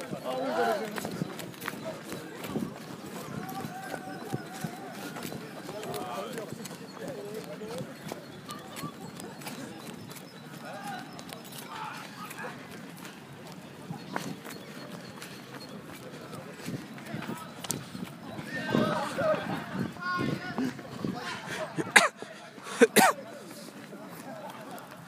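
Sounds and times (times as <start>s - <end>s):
running footsteps: 0.0s - 25.0s
distant shouting voices: 2.0s - 6.6s.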